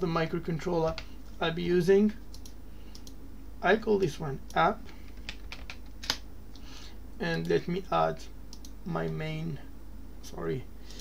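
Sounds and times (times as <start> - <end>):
computer keyboard keystrokes: 2.3 - 3.2, 5.1 - 6.2.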